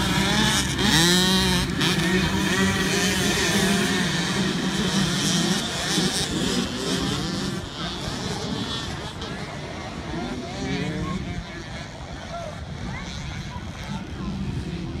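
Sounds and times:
motocross bikes revving: 0.0s - 15.0s
people's voices: 0.0s - 15.0s.

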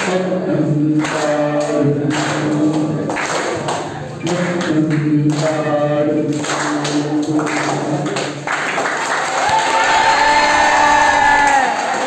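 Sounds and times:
person singing unaccompanied: 0.0s - 3.1s.

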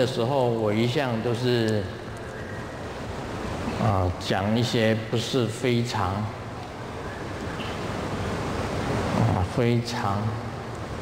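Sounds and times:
large hall background rush: 0.0s - 11.0s.

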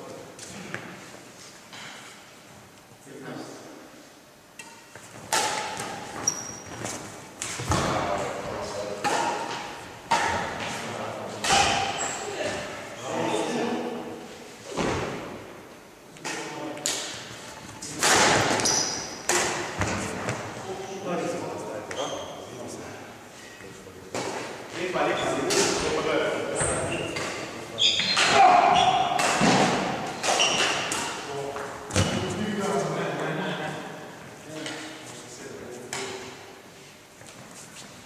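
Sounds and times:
racket striking shuttlecock: 4.6s - 6.1s
shoe squeaks on floor: 6.2s - 6.8s, 18.5s - 19.2s, 21.9s - 22.5s, 26.6s - 27.2s, 27.8s - 29.0s, 30.3s - 30.9s.

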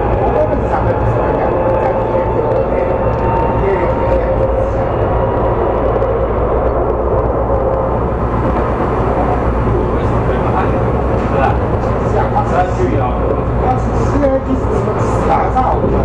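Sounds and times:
tram wheels rumbling on rails: 0.0s - 16.0s.

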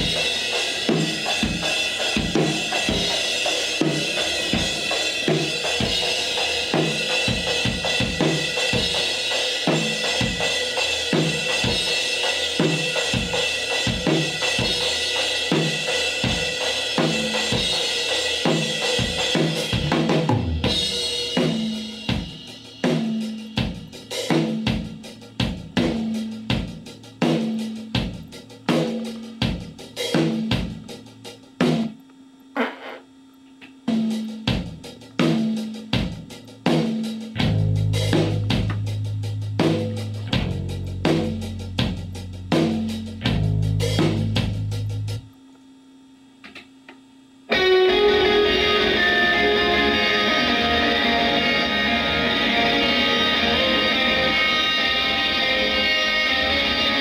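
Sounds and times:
cymbals and hi-hat: 0.0s - 32.0s, 33.8s - 45.3s
kick and snare beat: 0.0s - 32.0s, 33.7s - 45.3s.

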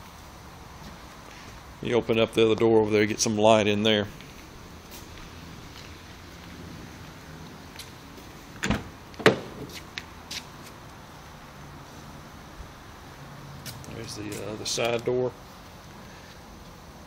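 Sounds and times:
steady low hiss: 0.0s - 17.0s
car door latch clicks: 8.6s - 9.7s.

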